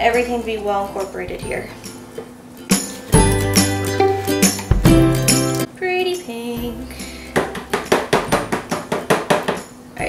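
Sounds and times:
spatula knocking plastic bucket: 7.4s - 9.7s.

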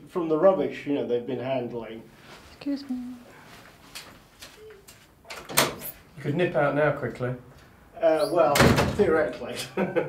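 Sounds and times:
door clunk and rattle: 5.3s - 5.8s, 8.5s - 9.2s.

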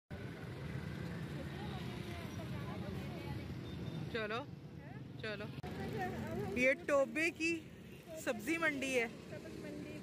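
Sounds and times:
traffic engine rumble: 0.1s - 10.0s.

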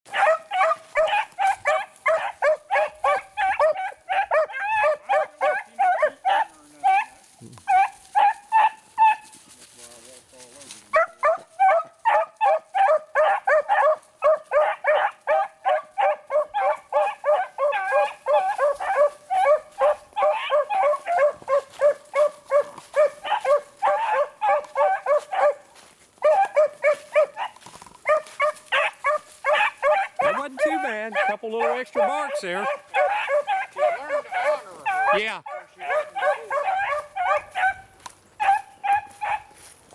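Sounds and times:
hounds baying: 0.1s - 9.6s, 10.7s - 39.9s.

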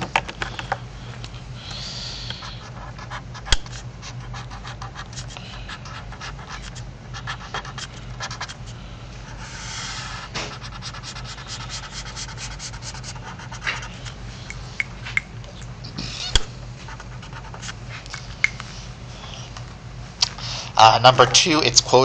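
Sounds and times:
highlighter scratching on paper: 2.2s - 14.8s, 16.8s - 17.8s.

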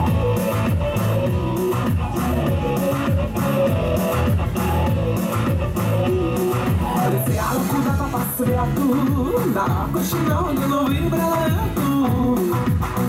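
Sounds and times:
pop-rock song through speakers: 0.0s - 13.0s.

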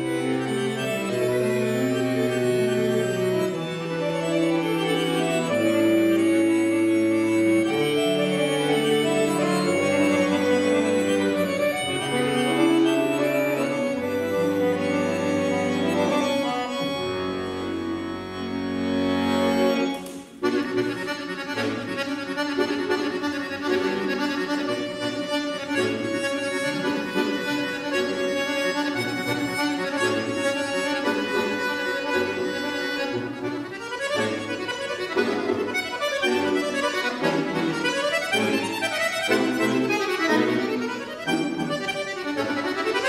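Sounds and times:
button accordion playing: 0.0s - 43.0s.

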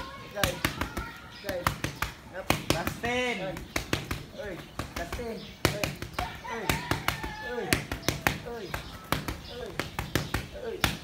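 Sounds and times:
boxing gloves smacking focus mitts: 0.4s - 11.0s.

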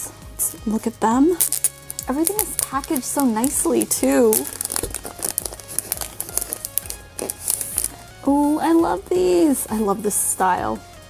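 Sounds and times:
soft background music: 0.0s - 11.0s
cellophane crinkling: 1.4s - 8.0s.

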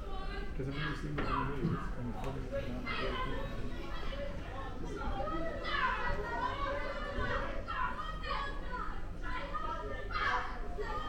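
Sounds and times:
children chattering and calling: 0.0s - 11.0s.

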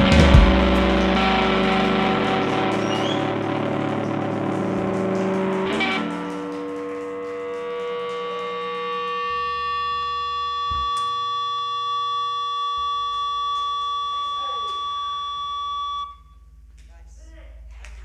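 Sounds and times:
high held electric tone: 0.0s - 16.5s
low electrical hum: 6.3s - 18.0s.

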